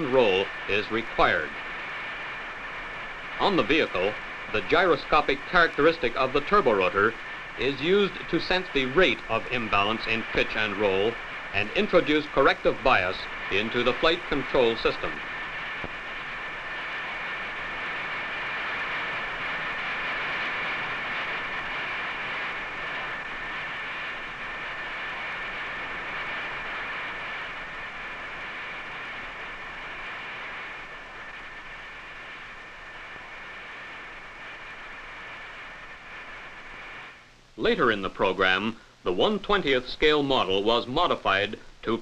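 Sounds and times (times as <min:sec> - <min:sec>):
compressed air rushing from jets: 0:00.0 - 0:30.9
steady high whine: 0:00.0 - 0:42.0.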